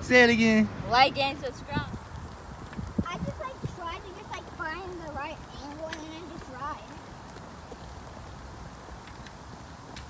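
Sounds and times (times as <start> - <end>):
bike tyres rolling: 0.0 - 10.0
wind on microphone: 0.7 - 10.0.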